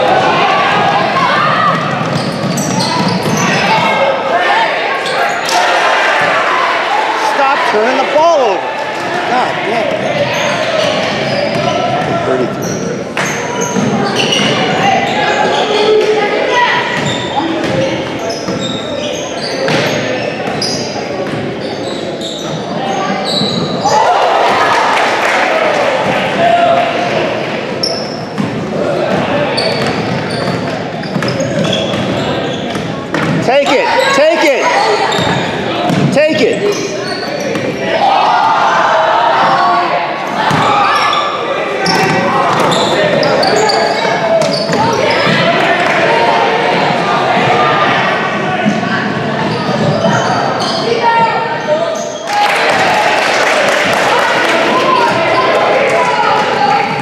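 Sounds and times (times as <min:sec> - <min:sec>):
crowd voices and shouts: 0:00.0 - 0:57.0.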